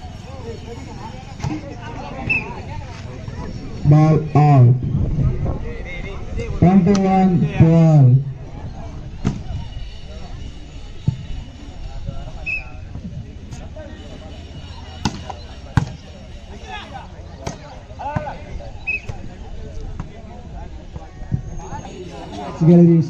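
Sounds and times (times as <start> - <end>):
spectators chattering: 0.0 - 23.0.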